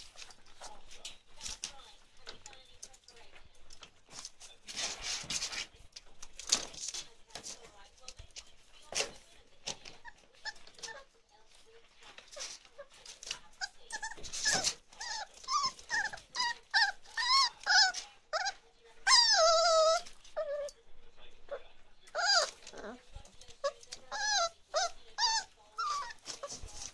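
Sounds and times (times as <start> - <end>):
puppies whining and yipping: 13.6 - 20.8, 22.1 - 26.7.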